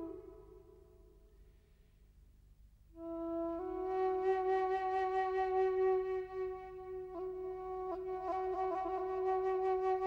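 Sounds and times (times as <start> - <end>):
solo flute note with vibrato: 0.0 - 1.0.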